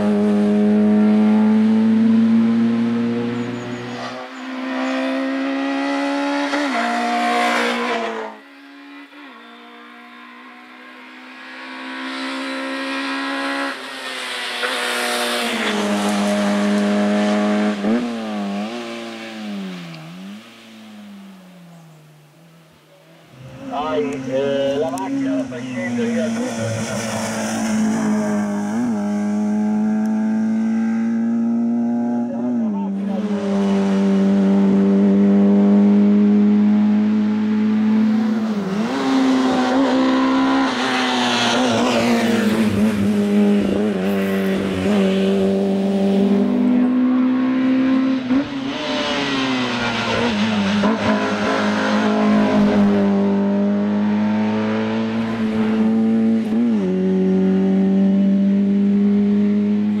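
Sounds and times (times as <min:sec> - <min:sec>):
car engine revving hard: 0:00.0 - 0:08.8, 0:09.6 - 0:20.4, 0:23.4 - 1:00.0.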